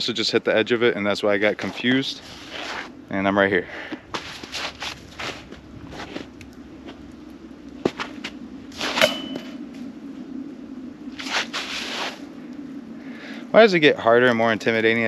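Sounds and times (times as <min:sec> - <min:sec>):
rustling movement in slush: 0:03.8 - 0:06.4
footsteps in wet slush: 0:04.1 - 0:07.0
disc hitting basket chains: 0:08.9 - 0:09.6.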